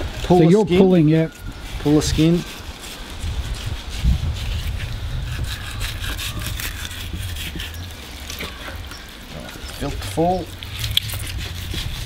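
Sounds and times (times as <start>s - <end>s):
knife scraping fish skin: 1.4s - 12.0s.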